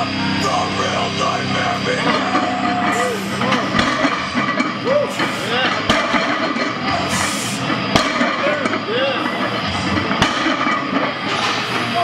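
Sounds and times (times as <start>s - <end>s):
loud dense background music: 0.0s - 12.0s.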